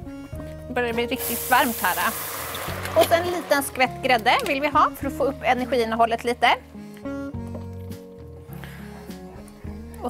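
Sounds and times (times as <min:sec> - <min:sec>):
background music held notes: 0:00.0 - 0:10.0.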